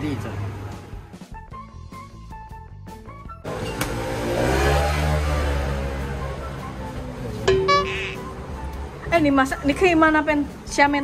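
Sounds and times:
claw machine electronic music: 7.5 - 8.4.

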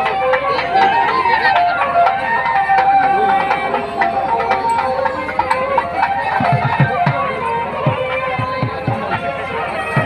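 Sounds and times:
crowd voices: 0.0 - 10.0
low heavy drum beats: 0.0 - 10.0
wavering pitched melody: 0.0 - 10.0.

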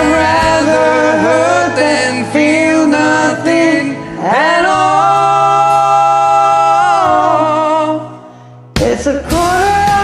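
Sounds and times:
man singing: 0.0 - 8.2, 8.8 - 10.0
karaoke backing track: 0.0 - 10.0.

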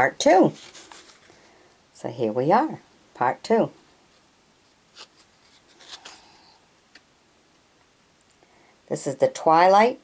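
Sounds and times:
soft rustle: 0.3 - 1.8, 3.8 - 7.0.

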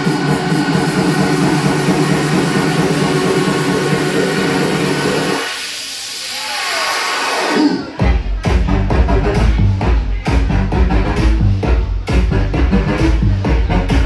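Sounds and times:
loud electronic dance music: 0.0 - 14.0.

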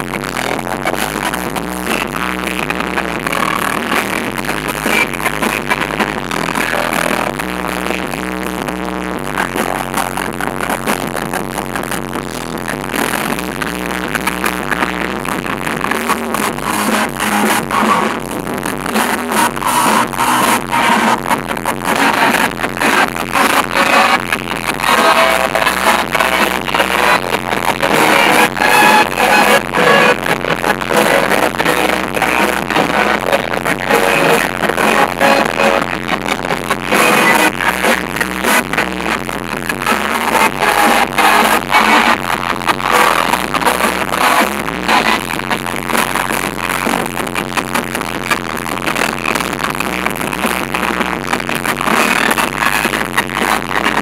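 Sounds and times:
electric guitar: 0.0 - 54.0.

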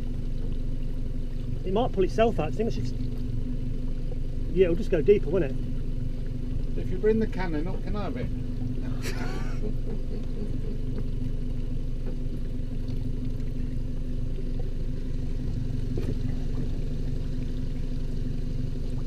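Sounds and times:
boat engine idling: 0.0 - 19.0.

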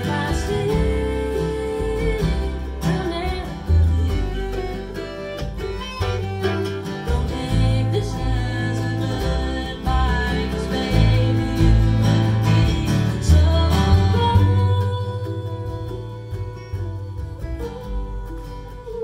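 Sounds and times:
acoustic guitars: 0.0 - 19.0
fiddle: 0.0 - 19.0
mandolin: 0.0 - 19.0
upright bass: 0.0 - 19.0
woman singing: 0.0 - 19.0.

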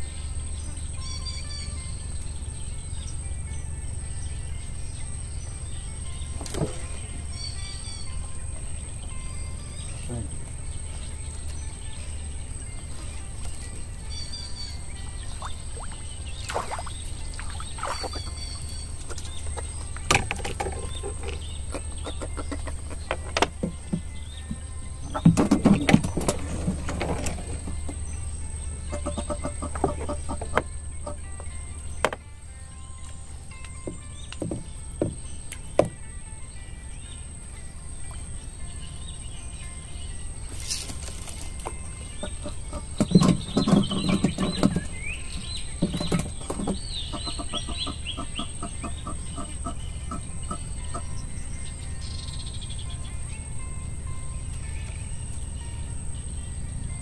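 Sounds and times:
bird chirps: 0.0 - 32.2, 32.8 - 57.0
birds clucking calls: 0.0 - 57.0
constant high tone: 0.0 - 57.0
steady low hum: 0.0 - 57.0.

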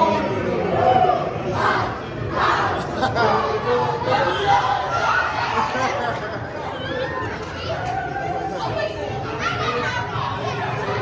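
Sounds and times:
girls and women chattering: 0.0 - 11.0.

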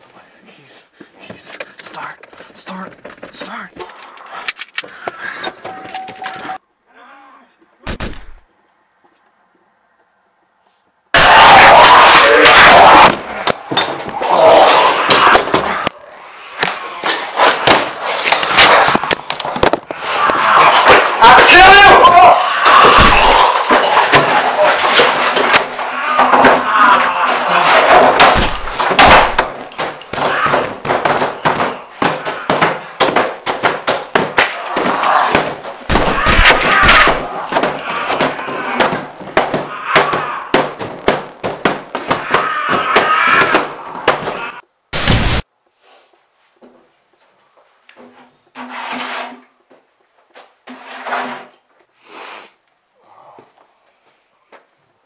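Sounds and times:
knocks and crashes: 27.8 - 44.4.

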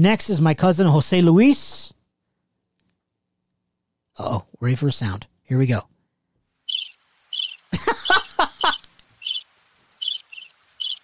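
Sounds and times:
crickets chirping: 6.7 - 11.0.

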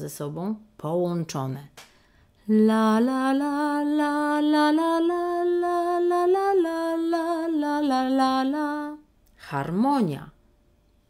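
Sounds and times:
woman singing slow melody: 2.4 - 9.1.

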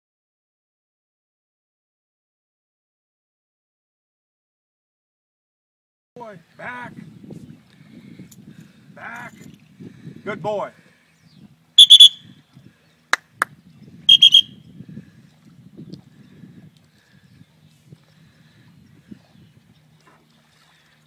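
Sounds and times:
dog whistle trill blasts: 11.8 - 12.2, 14.1 - 14.6.

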